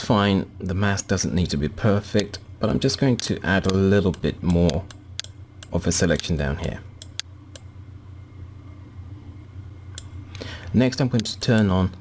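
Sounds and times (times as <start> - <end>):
low steady hum: 0.0 - 12.0
computer mouse clicks: 7.0 - 7.7, 11.1 - 11.7.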